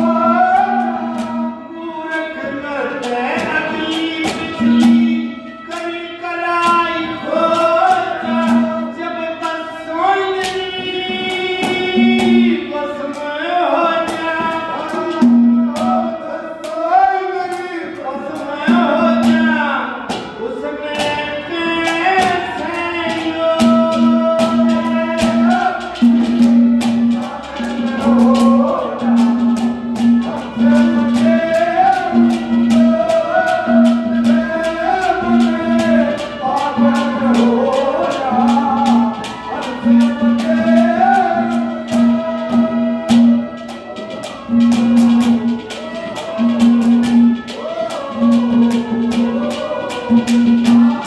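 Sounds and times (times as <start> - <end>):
hand drum: 0.0 - 51.0
person singing devotional song: 0.0 - 51.0
sharp rhythmic clicks: 10.3 - 51.0.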